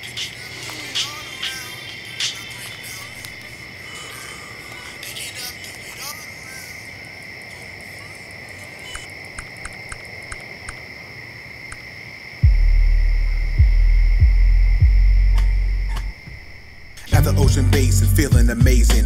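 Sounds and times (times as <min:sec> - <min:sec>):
crickets chirping: 0:00.0 - 0:19.0
deep sub-bass beat thumps: 0:12.4 - 0:16.4, 0:17.1 - 0:19.0.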